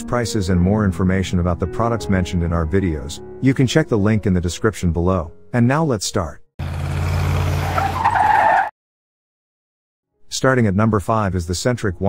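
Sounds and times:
car engine hum: 6.6s - 8.3s
tyre screech: 6.8s - 8.7s.

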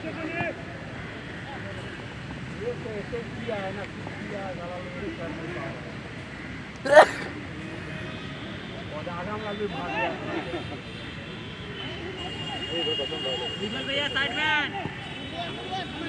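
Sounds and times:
players calling out: 6.8s - 7.4s.

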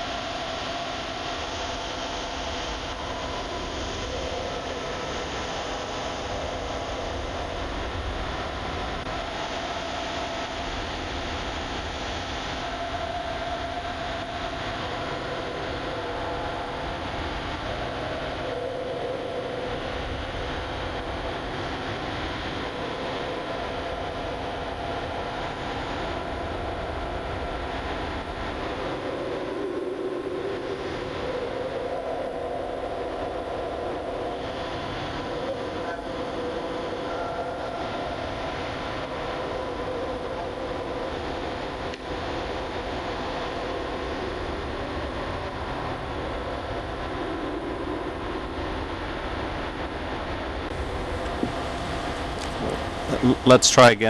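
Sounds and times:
steady rushing noise: 0.0s - 54.0s.

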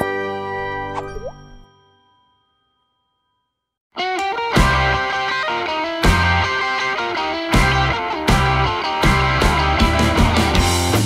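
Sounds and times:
jingle pitch swoop: 0.8s - 2.7s
chime-like tones: 0.9s - 3.6s.

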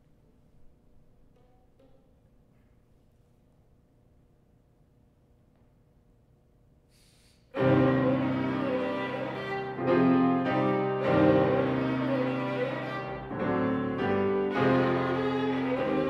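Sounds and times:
piano: 7.5s - 16.0s
violin: 7.6s - 16.0s.

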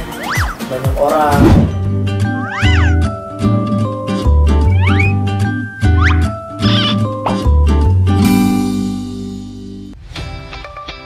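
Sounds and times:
cat meows: 2.4s - 3.1s.

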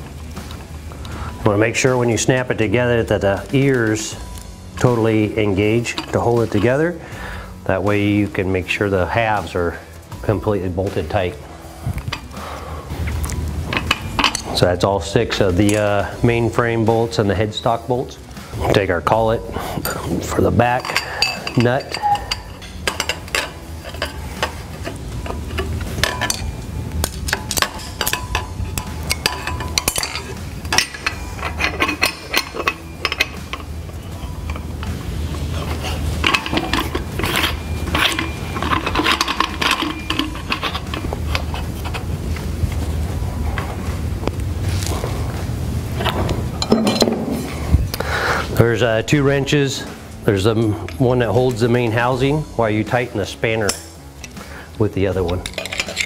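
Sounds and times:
steady low hum: 0.0s - 56.0s
steel parts clinking and scraping: 0.4s - 44.1s, 46.0s - 56.0s.

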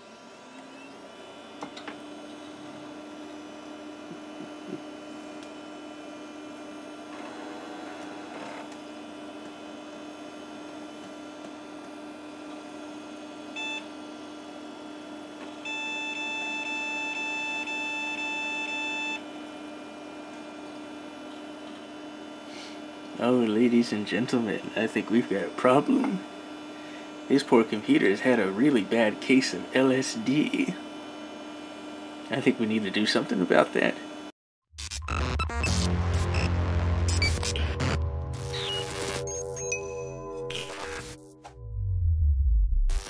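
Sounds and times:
computer fan and hard drive hum: 0.0s - 34.3s
computer speaker beeps: 34.9s - 41.2s.

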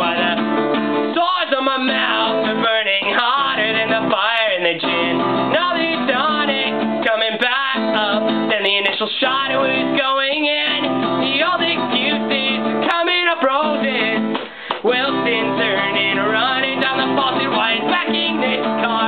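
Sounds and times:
acoustic guitar strumming: 0.0s - 19.0s
man singing: 0.0s - 19.0s.

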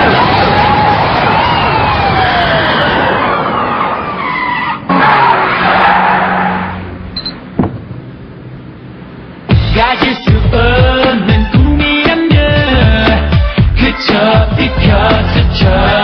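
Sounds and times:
sirens: 0.0s - 6.8s
tyres skidding and squealing: 0.0s - 9.5s
traffic noise: 0.0s - 11.7s
low engine hum: 6.8s - 10.8s.

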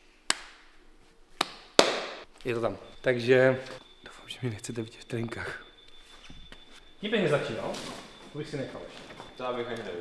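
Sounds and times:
hand slaps of a handshake: 0.3s - 0.6s, 1.4s - 2.2s.

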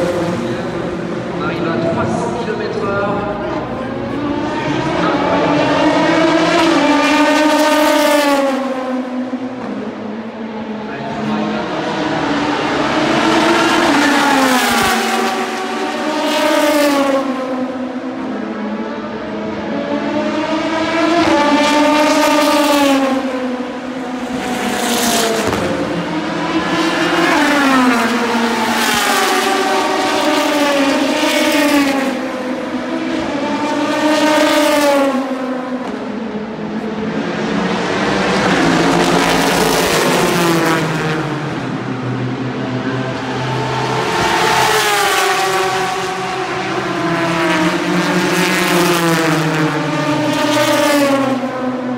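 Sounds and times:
race cars passing at speed: 0.0s - 51.9s.

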